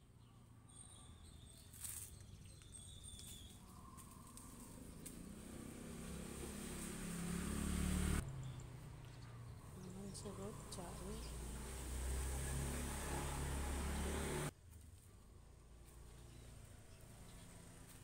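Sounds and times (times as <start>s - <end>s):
bird chirps: 0.2s - 5.4s.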